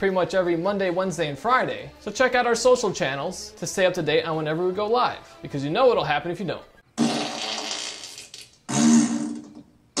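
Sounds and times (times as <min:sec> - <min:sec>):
comic fart sounds: 0:06.9 - 0:10.0.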